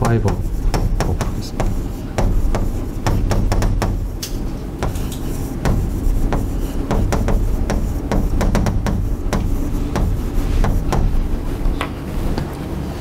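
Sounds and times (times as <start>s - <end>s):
chalk tapping and scratching: 0.0s - 12.5s
low room rumble: 0.0s - 13.0s.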